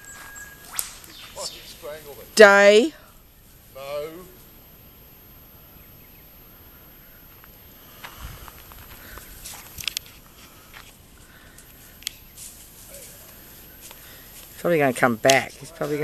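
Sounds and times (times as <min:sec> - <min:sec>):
footsteps rustling through dry grass: 0:00.0 - 0:02.2, 0:07.2 - 0:16.0
twigs cracking and snapping: 0:08.4 - 0:14.6.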